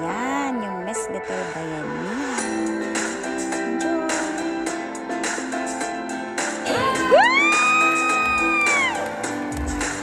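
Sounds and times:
background music: 0.0 - 10.0
loud high whoop: 6.9 - 9.0.

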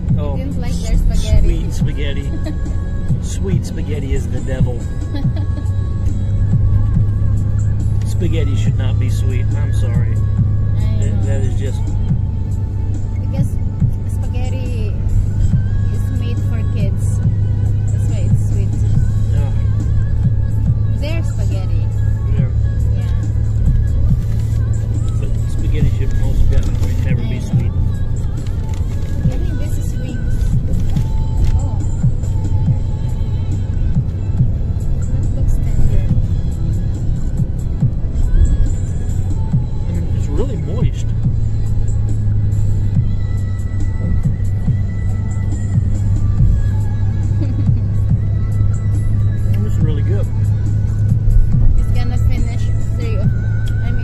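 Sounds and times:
bus engine drone: 0.0 - 54.0
music playing: 0.0 - 54.0
road noise: 0.0 - 54.0.

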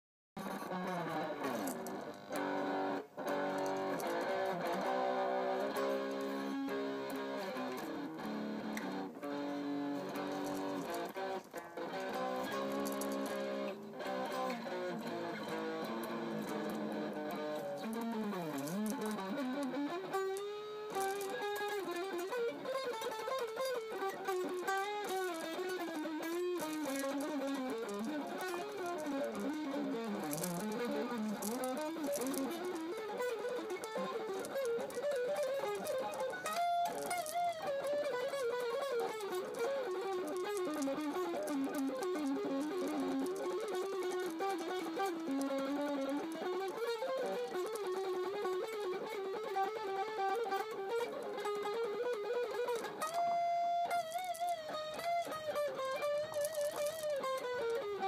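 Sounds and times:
fast electric guitar: 0.4 - 58.0.

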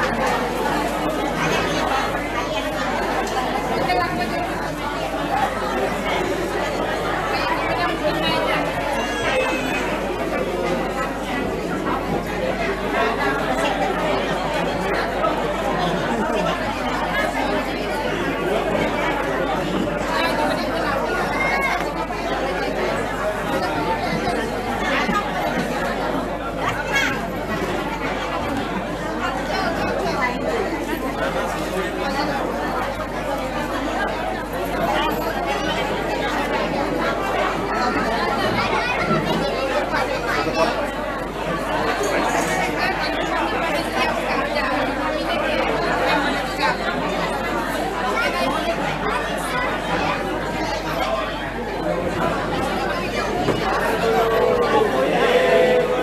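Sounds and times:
crowd chatting in a large hall: 0.0 - 56.0.

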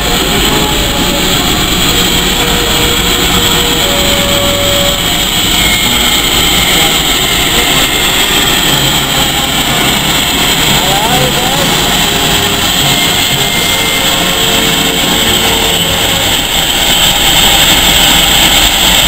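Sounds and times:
steam locomotive hissing: 0.0 - 19.0.

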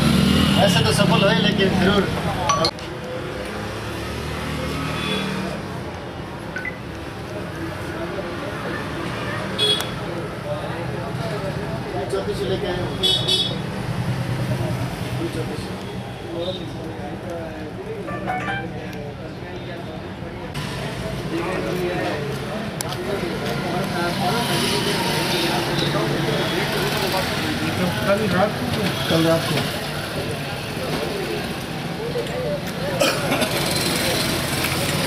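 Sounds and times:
traffic noise: 0.0 - 35.0
vehicle horn: 18.1 - 18.8.

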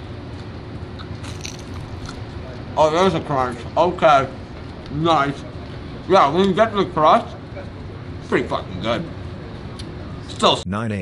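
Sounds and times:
person chewing crunchy pizza crust: 1.0 - 2.3.

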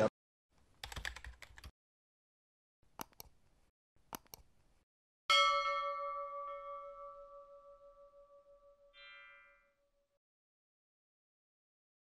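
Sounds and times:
quick clicks: 3.0 - 3.3, 4.1 - 4.5
bell chime ringing: 5.3 - 10.0.

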